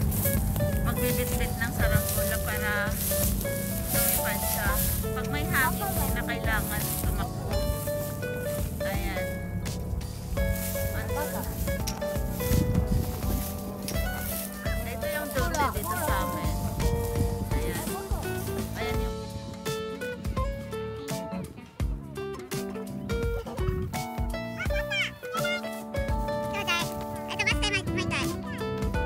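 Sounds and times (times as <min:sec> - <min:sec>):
background music with held notes: 0:00.0 - 0:29.0
faint voices: 0:00.0 - 0:29.0.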